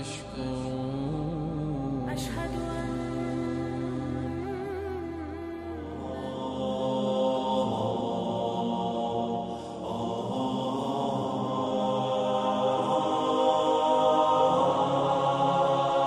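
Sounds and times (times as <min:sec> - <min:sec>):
wordless vocal chant music: 0:00.0 - 0:16.0.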